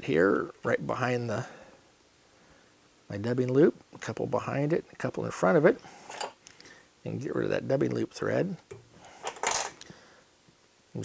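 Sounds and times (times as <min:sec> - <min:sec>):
metal tools clinking: 0:06.1 - 0:06.4, 0:08.7 - 0:09.8.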